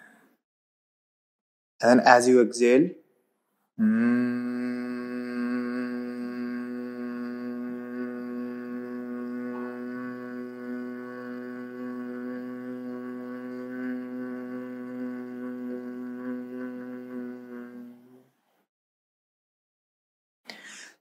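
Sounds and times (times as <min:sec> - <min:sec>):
man humming low pitch: 0:03.8 - 0:18.3.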